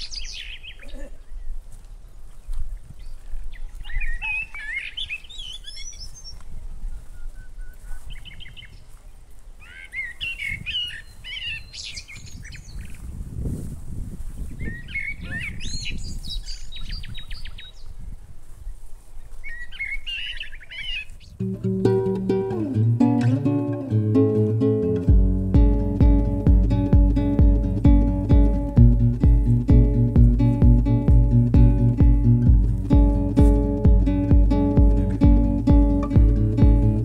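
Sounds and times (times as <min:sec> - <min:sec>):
birds warbling and trilling: 0:02.3 - 0:09.0, 0:19.4 - 0:21.4
low rumbling noise: 0:25.1 - 0:37.0.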